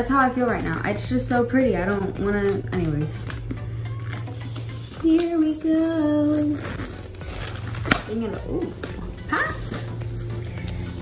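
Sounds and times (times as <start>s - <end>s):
plastic shrink wrap tearing: 1.8s - 11.0s.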